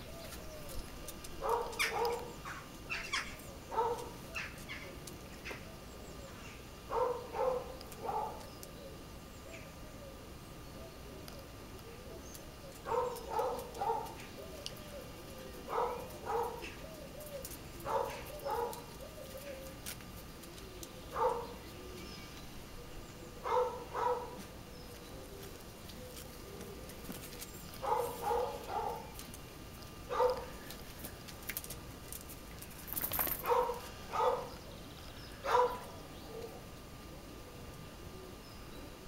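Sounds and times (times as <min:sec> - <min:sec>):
dove cooing: 0:00.0 - 0:29.4, 0:33.1 - 0:39.0.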